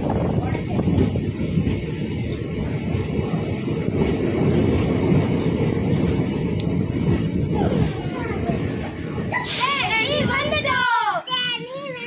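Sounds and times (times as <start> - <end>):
train running rumble: 0.0 - 12.0.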